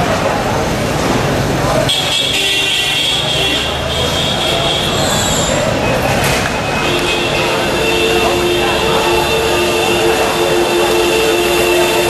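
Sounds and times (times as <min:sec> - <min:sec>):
crowd on foot: 0:00.0 - 0:12.0
traffic: 0:00.0 - 0:12.0
voices: 0:00.0 - 0:12.0.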